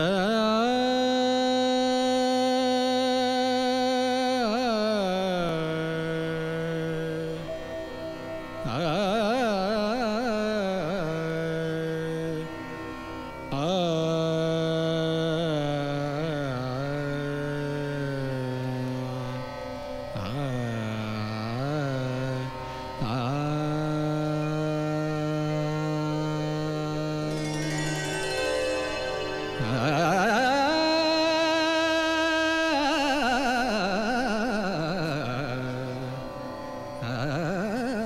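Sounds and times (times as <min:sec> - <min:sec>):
man singing long vowel: 0:00.0 - 0:07.6, 0:08.6 - 0:12.5, 0:13.5 - 0:19.4, 0:20.2 - 0:36.3
harmonium and tanpura drone: 0:00.0 - 0:38.0
man singing a held note: 0:24.2 - 0:36.2.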